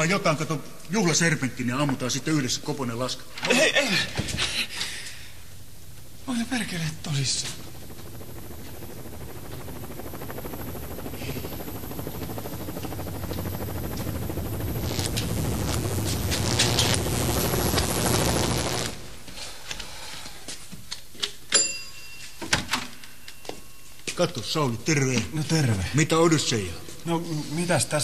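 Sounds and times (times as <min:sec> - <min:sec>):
helicopter rotor clatter: 0:06.0 - 0:19.1.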